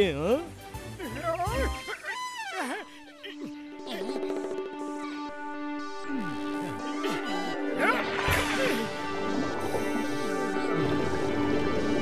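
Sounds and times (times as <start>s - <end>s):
background music sustained tones: 0.0s - 12.0s.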